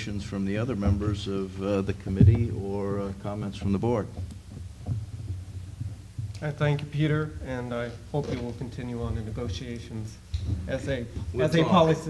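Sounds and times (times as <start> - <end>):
faint low thumps: 0.0 - 11.6
low electrical hum: 0.0 - 12.0.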